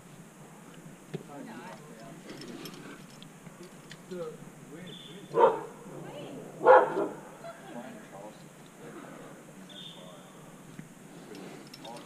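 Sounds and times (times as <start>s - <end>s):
dog barking: 5.3s - 5.8s, 6.6s - 7.3s.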